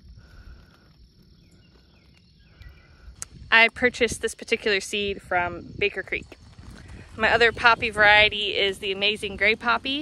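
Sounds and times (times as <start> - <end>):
faint chirps: 0.0 - 8.0
insects buzzing: 0.0 - 10.0.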